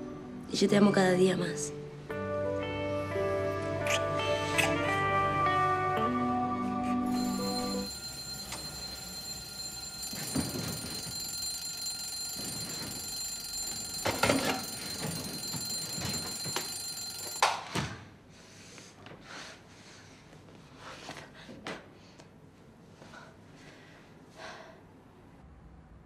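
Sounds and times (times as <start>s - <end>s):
alarm clock beeping: 7.1s - 17.7s.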